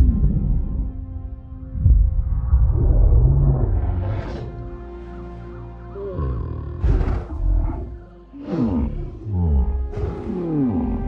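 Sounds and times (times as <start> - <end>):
film score music: 0.0 - 11.0
giant ape low calls: 5.9 - 11.0.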